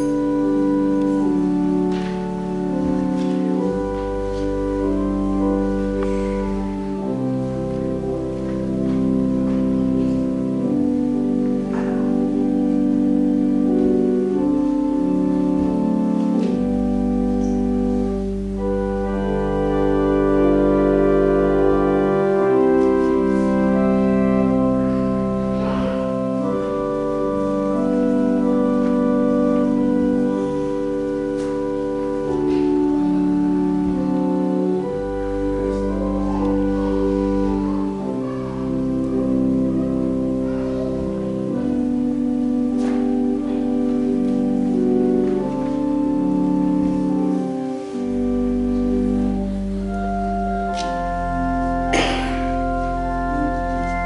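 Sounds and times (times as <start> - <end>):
church organ chords: 0.0 - 54.0.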